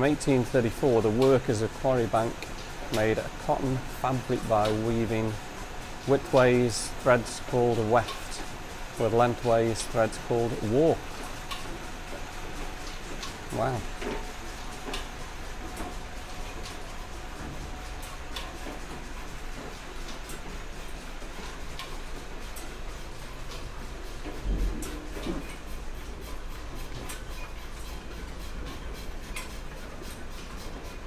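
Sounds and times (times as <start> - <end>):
power looms rumbling: 0.0 - 31.0.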